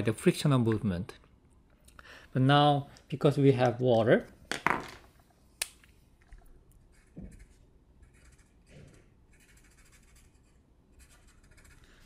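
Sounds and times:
pen scratching on paper: 0:06.9 - 0:12.0.

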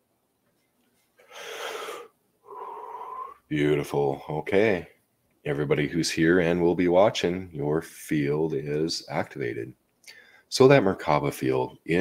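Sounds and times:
man inhaling deeply: 0:01.2 - 0:03.4.

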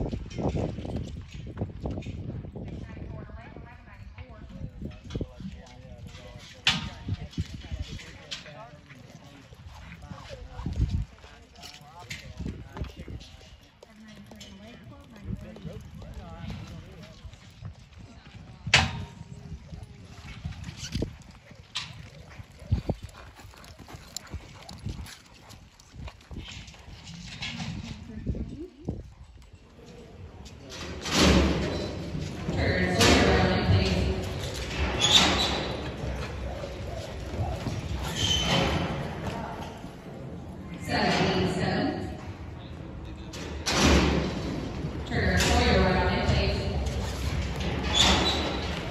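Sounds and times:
horse hoofbeats on dirt: 0:07.1 - 0:28.1, 0:31.4 - 0:40.6, 0:45.8 - 0:48.9
people talking: 0:32.4 - 0:43.6, 0:45.1 - 0:47.2.

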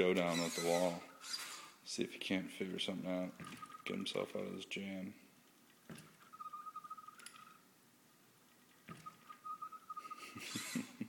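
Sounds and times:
robot drive motors whining: 0:00.3 - 0:01.8, 0:10.4 - 0:10.9.

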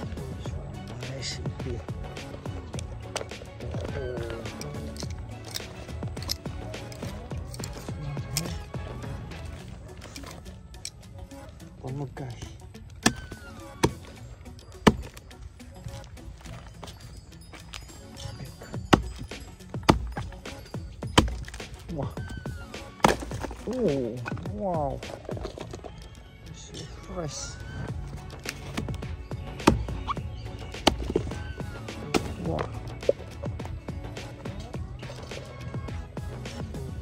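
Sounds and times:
background music: 0:00.0 - 0:37.0
knife chopping into log: 0:13.0 - 0:14.1, 0:14.8 - 0:15.2, 0:18.9 - 0:20.3, 0:21.1 - 0:21.8, 0:23.0 - 0:23.6, 0:29.6 - 0:30.0, 0:30.8 - 0:31.3, 0:32.0 - 0:32.7.

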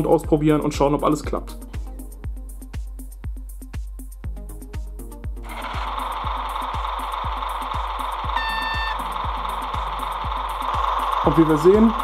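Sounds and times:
background music with steady beat: 0:00.0 - 0:12.0
model train engine sound: 0:05.5 - 0:12.0.

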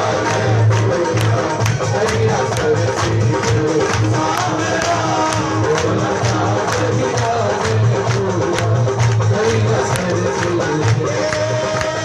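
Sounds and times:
devotional band music: 0:00.0 - 0:12.0
sharp percussion strikes: 0:00.0 - 0:12.0.

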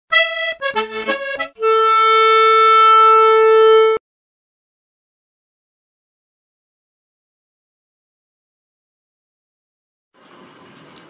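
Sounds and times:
intro music with held note: 0:00.1 - 0:04.0.

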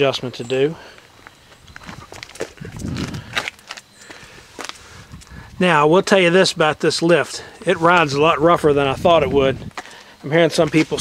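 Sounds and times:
footsteps on asphalt: 0:00.8 - 0:05.6, 0:09.6 - 0:11.0.

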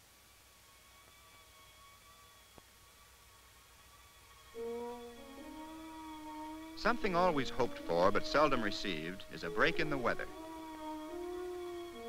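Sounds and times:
faint soundtrack hiss: 0:00.0 - 0:12.0
faint steady high tone: 0:00.0 - 0:12.0.

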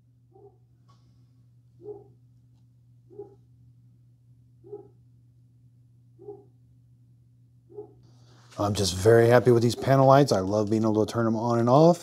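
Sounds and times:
steady low hum: 0:00.0 - 0:12.0
dog barking: 0:00.3 - 0:00.6, 0:01.8 - 0:02.2, 0:03.1 - 0:03.5, 0:04.6 - 0:05.0, 0:06.2 - 0:06.6, 0:07.7 - 0:08.0.

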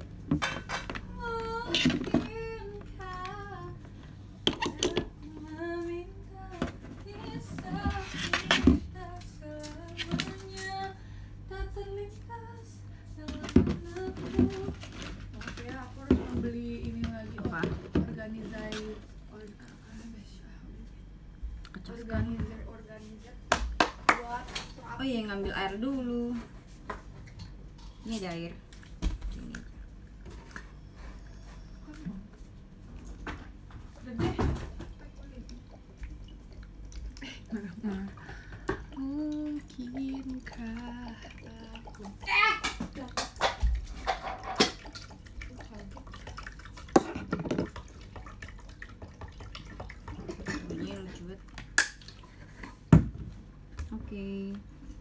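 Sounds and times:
kitchenware clattering: 0:42.3 - 0:45.0.

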